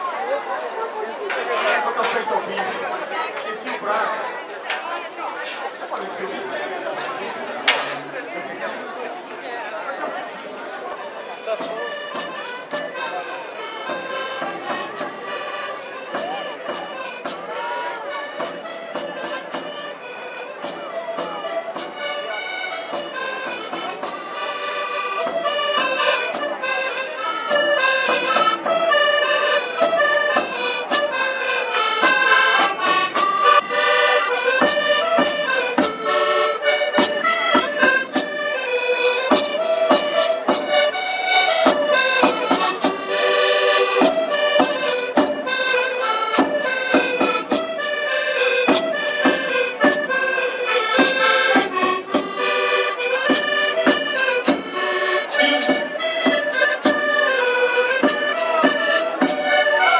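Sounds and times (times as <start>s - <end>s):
accordion-led folk dance music: 0.0s - 59.9s.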